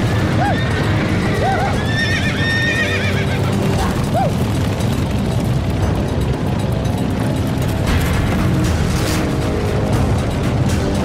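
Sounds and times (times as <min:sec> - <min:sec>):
horses whinnying: 0:00.0 - 0:04.6
rumble of stampeding hooves: 0:00.0 - 0:11.0.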